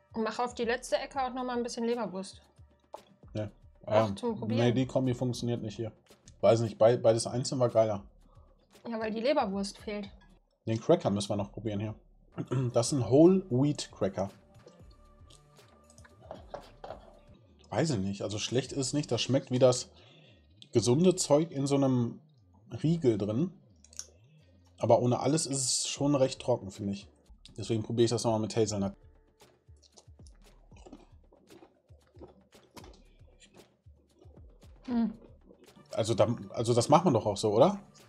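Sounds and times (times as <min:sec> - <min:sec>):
quiet background music: 0:00.0 - 0:38.0
cracker crunching: 0:29.4 - 0:36.0.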